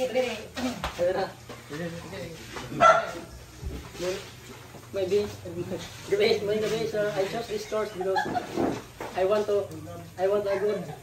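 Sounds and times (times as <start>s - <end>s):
dog barking: 2.8s - 3.3s.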